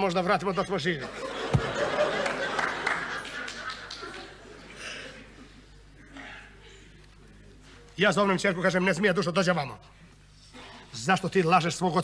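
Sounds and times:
audience laughter: 1.0s - 5.8s
audience clapping: 1.6s - 4.4s.

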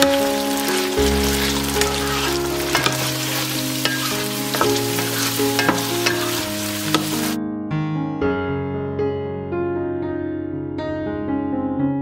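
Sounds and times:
okra sizzling in hot oil: 0.0s - 7.4s
soft piano music: 0.0s - 12.0s
spatula knocking against pan: 2.6s - 7.3s.

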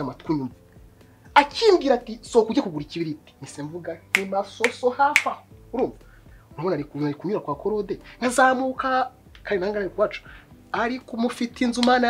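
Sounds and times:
man talking excitedly: 1.4s - 6.0s, 6.6s - 12.0s
finger snaps: 4.2s - 5.4s, 11.8s - 12.0s.

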